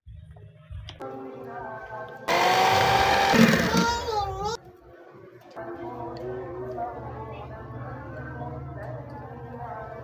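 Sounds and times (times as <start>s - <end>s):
electric hand mixer running: 2.3s - 3.8s.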